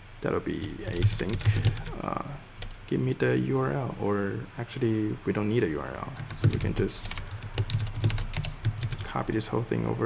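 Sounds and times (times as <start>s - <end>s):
computer keyboard typing: 0.6s - 2.0s, 2.6s - 2.8s, 6.2s - 9.2s.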